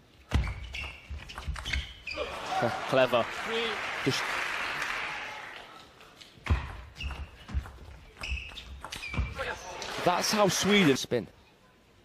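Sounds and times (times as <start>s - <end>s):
shoes squeaking on floor: 0.3s - 2.3s, 6.5s - 9.6s.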